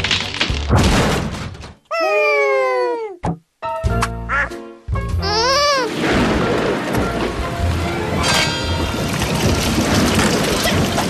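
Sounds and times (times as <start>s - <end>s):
nasal cartoon voice: 1.9s - 3.2s, 4.3s - 4.6s, 5.2s - 5.9s
cartoon music: 3.9s - 6.0s
quacking squawk: 4.3s - 4.6s.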